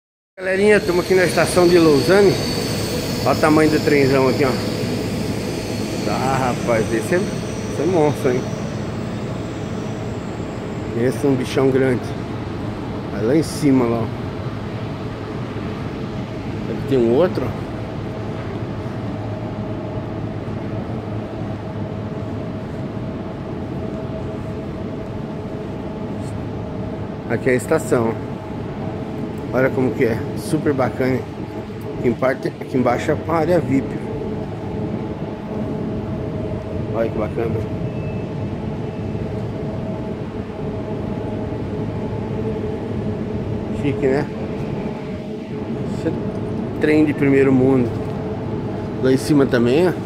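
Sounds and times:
electric train humming: 0.4 - 50.0
faint steady tones: 0.4 - 50.0.

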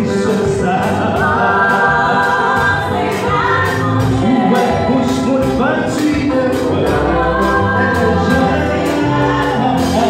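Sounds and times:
gospel singers with band: 0.0 - 10.0.

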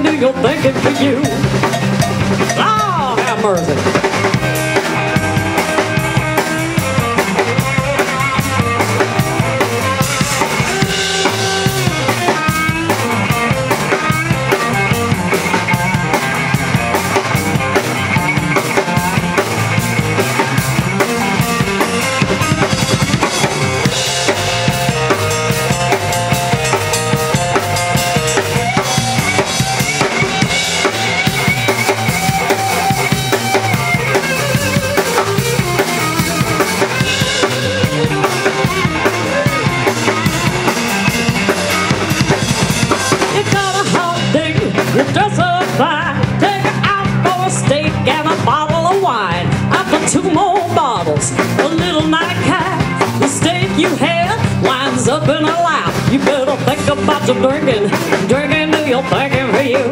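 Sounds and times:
drum kit beat: 0.0 - 59.9
electric bass line: 0.0 - 59.9
electric guitar lead lines: 0.0 - 59.9.

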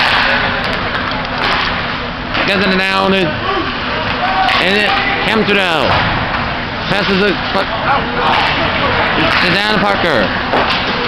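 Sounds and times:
hockey sticks and puck clacking: 0.0 - 2.6, 4.0 - 5.1, 7.0 - 11.0.

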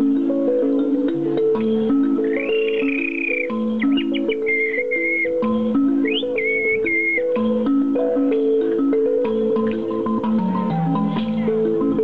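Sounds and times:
toy instrument melody: 0.0 - 12.0
bird-like whistle calls: 2.2 - 7.5.

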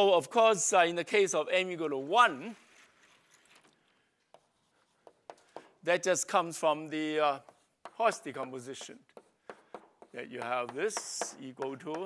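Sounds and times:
man speaking: 0.0 - 2.6, 5.8 - 9.0, 10.1 - 12.0.

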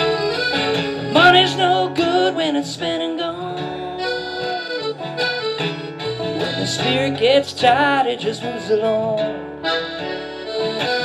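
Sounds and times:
clarinet long sliding note: 0.0 - 1.9, 3.6 - 6.4, 9.6 - 11.0
strummed acoustic guitar: 0.0 - 11.0
upright bass: 0.0 - 11.0.

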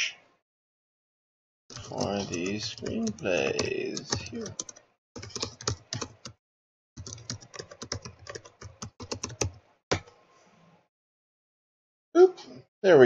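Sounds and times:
keyboard typing: 1.7 - 6.4, 7.0 - 10.1.

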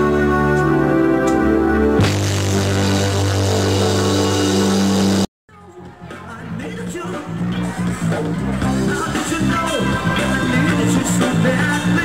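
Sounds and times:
live band sustained chord: 0.0 - 5.3
low bass note: 2.0 - 5.3.

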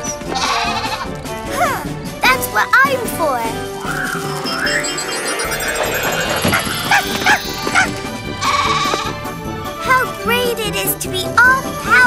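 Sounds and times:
cartoon soundtrack music: 0.0 - 12.0
goat bleating: 0.3 - 1.1
magic sparkle effects: 3.6 - 8.2
dog yapping: 6.5 - 9.1.

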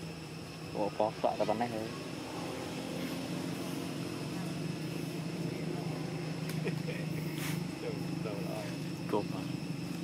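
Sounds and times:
engine drone: 0.0 - 10.0
thin steady high tone: 0.0 - 10.0.

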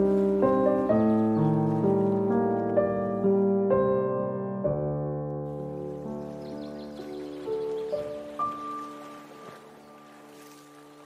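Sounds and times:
flowing water rushing: 0.0 - 2.8, 5.5 - 11.0
solo piano: 0.0 - 11.0.

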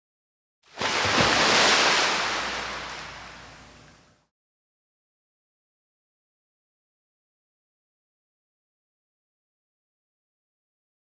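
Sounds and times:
rush of water: 0.8 - 4.1.

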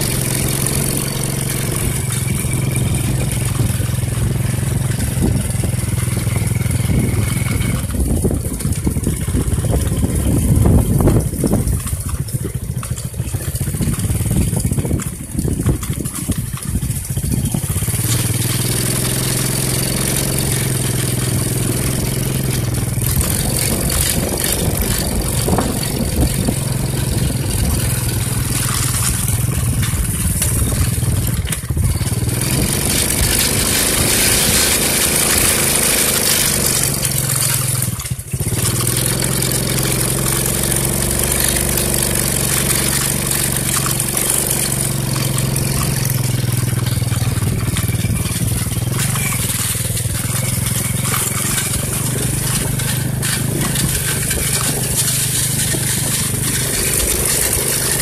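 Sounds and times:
small motorcycle engine running: 0.0 - 58.0.

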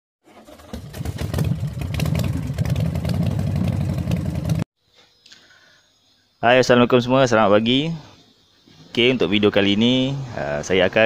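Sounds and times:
engine running loud and pulsing: 0.5 - 4.6.

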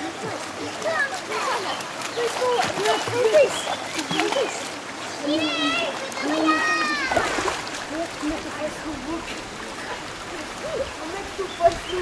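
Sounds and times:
children's voices: 0.0 - 12.0
water splashing: 0.0 - 12.0.

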